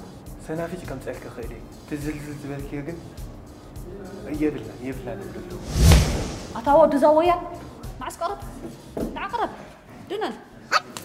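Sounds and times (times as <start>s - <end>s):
sharp brief sounds: 5.6s - 6.8s.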